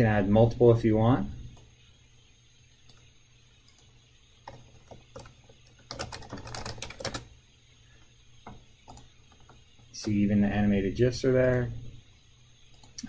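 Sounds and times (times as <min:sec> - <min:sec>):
computer keyboard typing: 0:03.7 - 0:07.3, 0:08.5 - 0:10.2.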